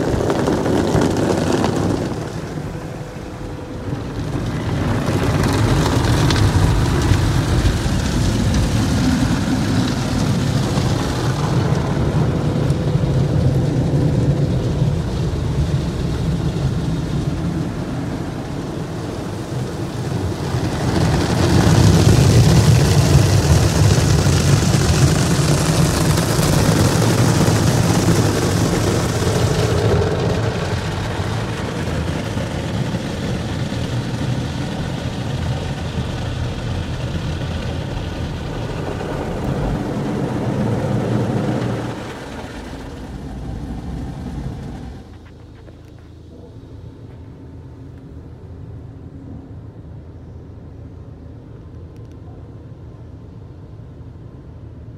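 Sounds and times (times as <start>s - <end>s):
water spraying onto car: 0.0s - 45.7s
car wash machinery rumbling: 0.0s - 51.9s.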